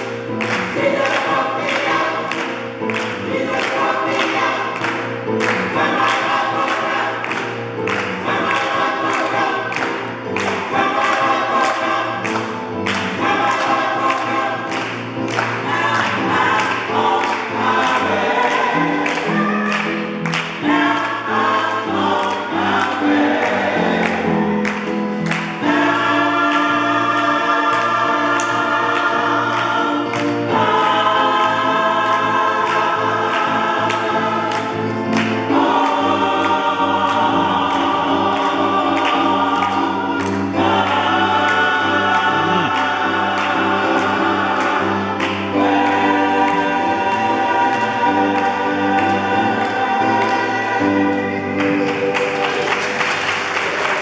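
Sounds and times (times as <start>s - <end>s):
gospel ensemble singing: 0.0s - 54.0s
handclaps on the beat: 0.0s - 54.0s.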